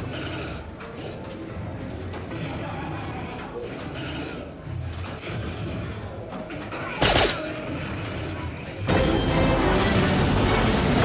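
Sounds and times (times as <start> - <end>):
background hubbub: 0.0 - 11.0
darts machine electronic burst: 7.0 - 7.7.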